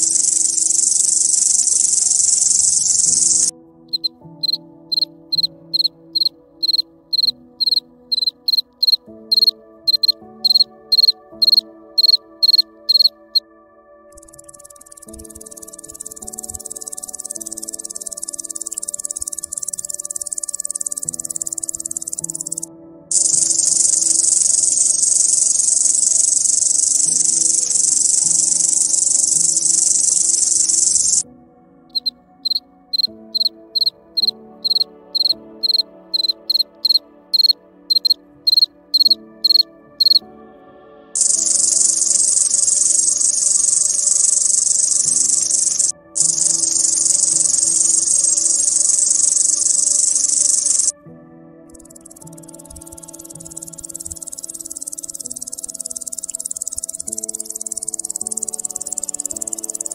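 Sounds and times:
cricket chirps: 0:00.0 - 0:13.4, 0:14.1 - 0:31.2, 0:31.9 - 0:40.2, 0:41.2 - 0:50.9, 0:51.7 - 0:59.9
crickets trilling: 0:00.0 - 0:13.4, 0:14.1 - 0:31.2, 0:31.9 - 0:40.2, 0:41.2 - 0:50.9, 0:51.7 - 0:59.9
soft background music: 0:00.0 - 0:59.9.

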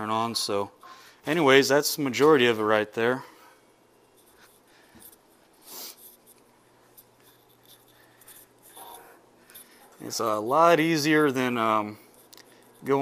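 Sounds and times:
rubbing and clicking handling noises: 0:04.0 - 0:13.0.

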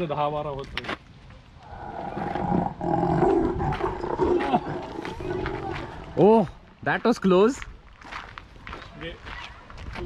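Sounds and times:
recorded tiger roar: 0:01.6 - 0:06.6.

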